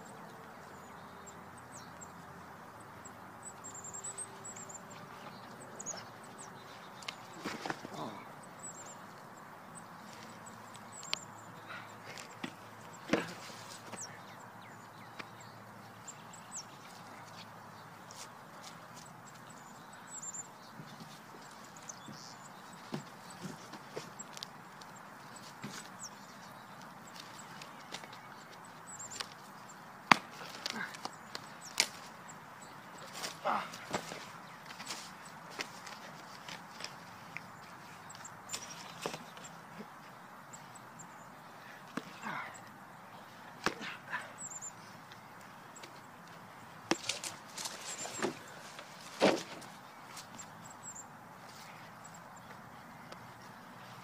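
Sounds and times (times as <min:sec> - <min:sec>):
faint outdoor background noise: 0:00.0 - 0:54.0.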